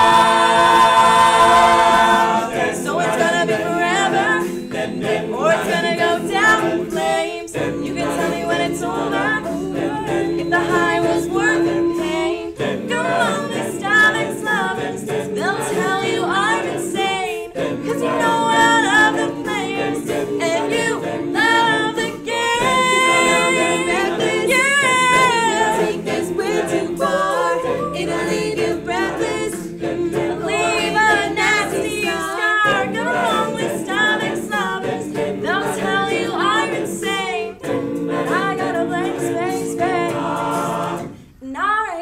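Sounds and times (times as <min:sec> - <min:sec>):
a cappella group singing in harmony: 0:00.0 - 0:42.0
beatboxed vocal percussion: 0:00.0 - 0:42.0.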